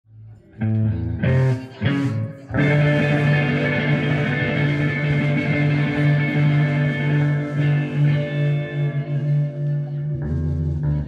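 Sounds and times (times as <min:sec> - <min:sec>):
guitar chords: 0:00.5 - 0:11.0.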